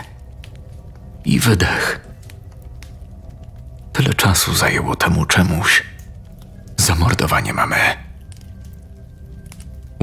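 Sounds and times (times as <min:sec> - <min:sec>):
dark ambient music with low drone: 0:00.0 - 0:10.0.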